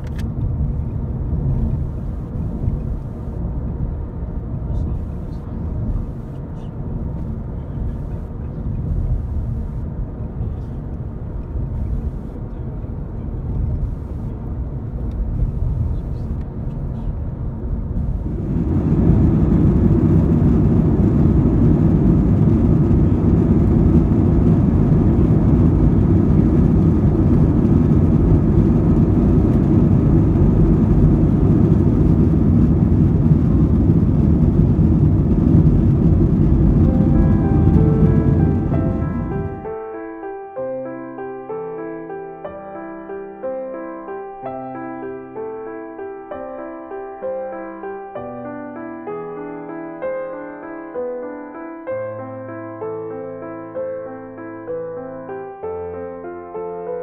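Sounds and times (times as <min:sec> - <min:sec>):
vehicle rumble from inside: 0:00.0 - 0:39.8
jet engines roaring in cabin: 0:00.0 - 0:40.0.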